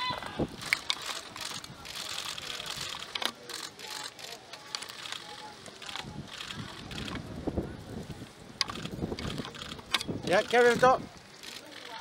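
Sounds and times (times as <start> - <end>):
faint murmured voices: 0.0 - 12.0
camera shutters clicking: 0.2 - 7.2, 8.6 - 10.8.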